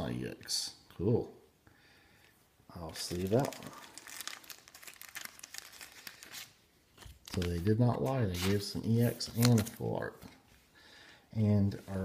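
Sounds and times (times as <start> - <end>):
trading card crinkling: 2.9 - 10.0.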